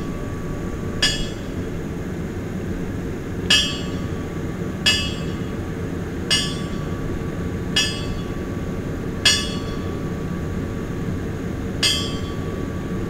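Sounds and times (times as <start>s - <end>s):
low steady rumble: 0.0s - 13.0s.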